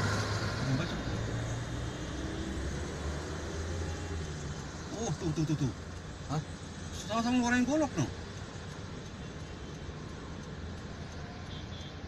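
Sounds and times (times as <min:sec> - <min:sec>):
car engine hum: 0:00.0 - 0:11.2
road noise inside car: 0:00.0 - 0:12.0.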